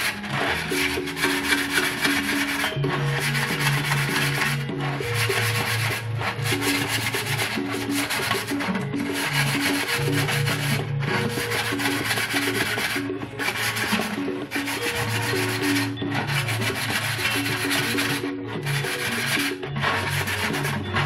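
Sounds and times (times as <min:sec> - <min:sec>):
background music: 0:00.0 - 0:21.0
scratchy rubbing on plastic edge: 0:00.0 - 0:21.0.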